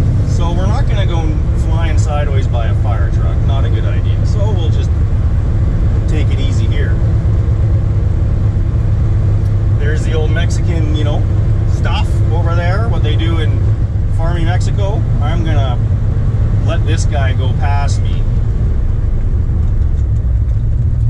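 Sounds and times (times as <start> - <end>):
car engine drone in cabin: 0.0 - 21.0
man talking: 0.3 - 4.9, 6.0 - 7.0, 9.8 - 15.9, 16.6 - 18.4.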